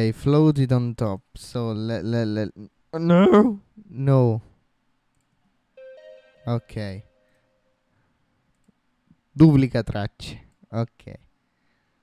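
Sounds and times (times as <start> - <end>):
held synth note: 5.8 - 7.9.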